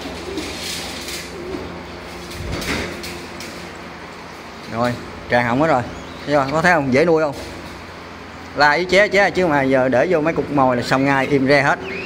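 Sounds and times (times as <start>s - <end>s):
young birds calling: 0.0s - 2.3s, 4.0s - 7.2s, 7.8s - 12.0s
steady low hum: 0.0s - 12.0s.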